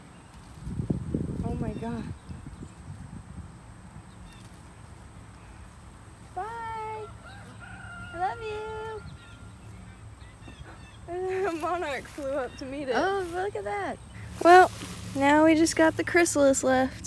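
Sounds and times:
faint outdoor rumble: 0.0s - 17.0s
rooster crowing: 7.0s - 9.7s.

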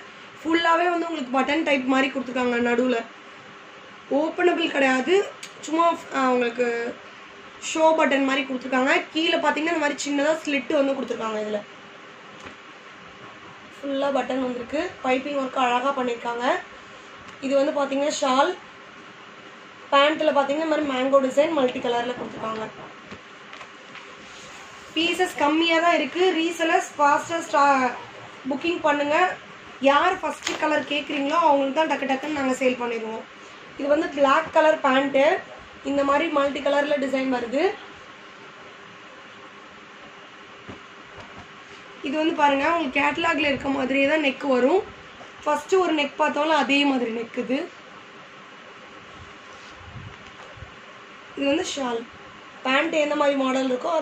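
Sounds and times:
faint hum: 0.0s - 54.0s
woman talking: 0.4s - 3.2s, 4.1s - 7.0s, 7.6s - 11.7s, 13.7s - 16.7s, 17.4s - 18.6s, 19.9s - 23.0s, 24.9s - 37.9s, 42.0s - 47.8s, 51.4s - 54.0s.

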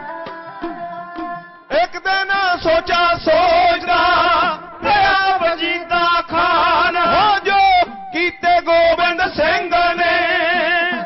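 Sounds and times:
man singing chant-like melody: 0.0s - 11.0s.

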